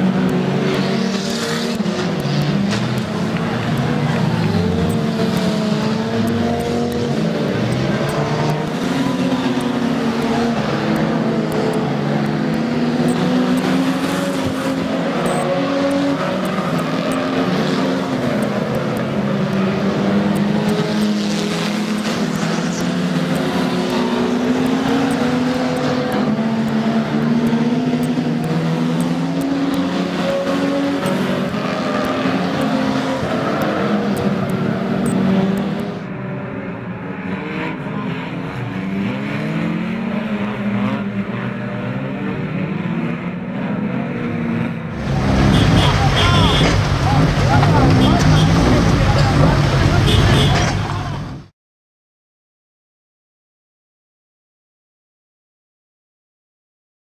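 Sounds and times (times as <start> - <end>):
race car engines: 0.0 - 51.5.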